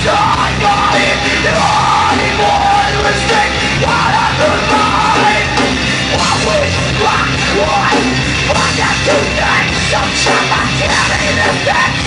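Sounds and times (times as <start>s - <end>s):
live rock band playing: 0.0s - 12.0s
person singing: 0.0s - 12.0s.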